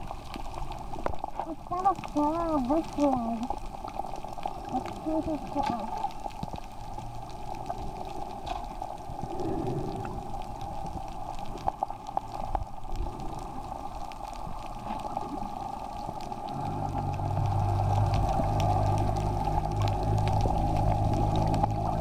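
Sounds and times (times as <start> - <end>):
low steady hum: 0.0 - 22.0
small underwater clicks: 0.0 - 22.0
underwater watery hiss: 9.1 - 11.4.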